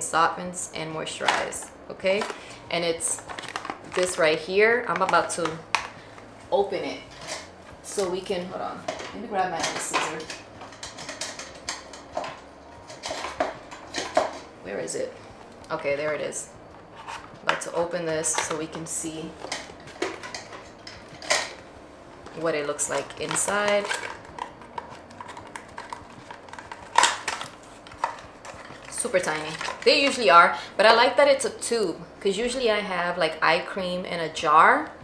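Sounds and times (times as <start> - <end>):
packaging clicks and rustles: 3.1 - 4.2, 22.2 - 30.2.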